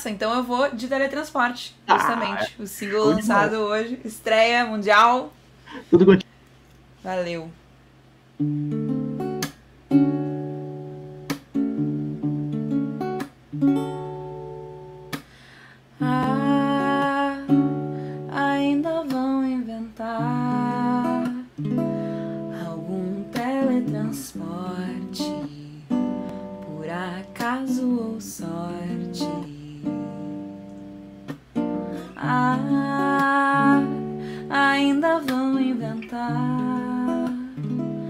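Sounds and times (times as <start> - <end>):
woman singing: 1.9 - 4.0, 16.0 - 21.6, 22.5 - 30.7, 32.0 - 37.8
acoustic guitar strumming chords: 8.4 - 19.2, 20.0 - 38.0.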